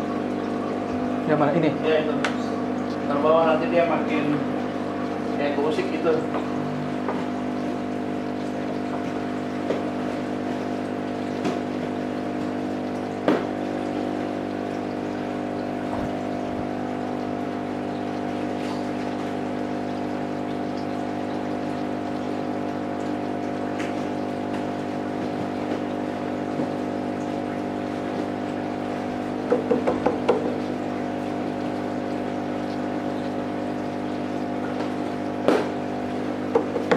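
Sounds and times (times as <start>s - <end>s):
aquarium air pump humming: 0.0s - 36.9s
water bubbling: 0.0s - 36.9s.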